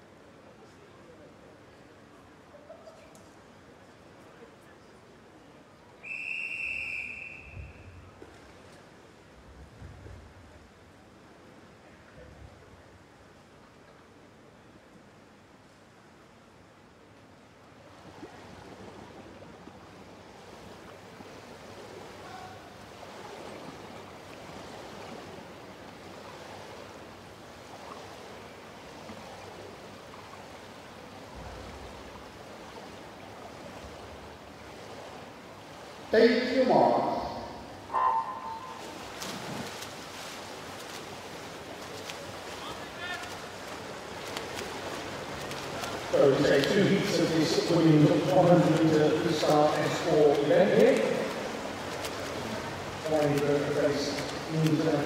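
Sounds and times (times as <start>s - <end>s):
indoor swimming pool ambience: 0.0s - 55.0s
long whistle blast: 6.0s - 8.0s.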